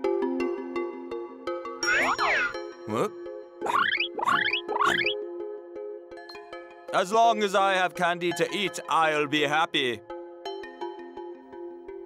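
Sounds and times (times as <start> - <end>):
light background music: 0.0 - 12.0
boing-like pitch glides: 3.6 - 5.2.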